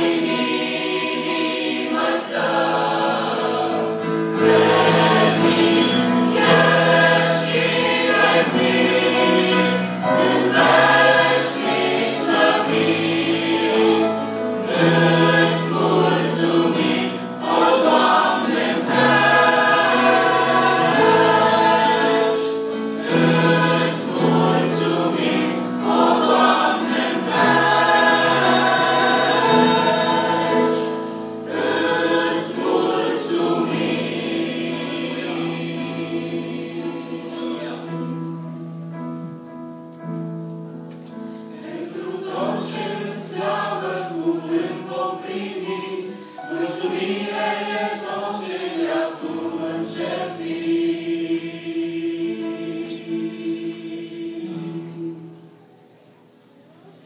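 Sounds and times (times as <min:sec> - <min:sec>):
mixed choir singing: 0:00.0 - 0:39.4, 0:41.2 - 0:56.3.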